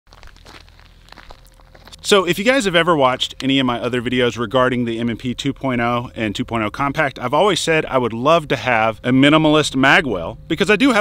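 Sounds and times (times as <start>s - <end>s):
footsteps on gravelly dirt: 0.1s - 4.2s.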